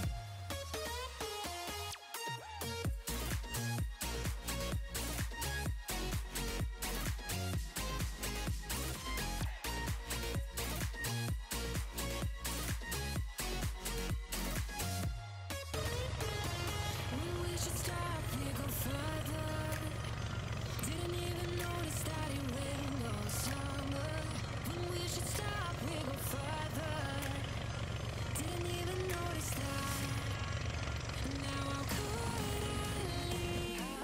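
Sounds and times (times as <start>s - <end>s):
background music gliding melody: 0.0s - 34.0s
propeller engine drone: 2.8s - 34.0s.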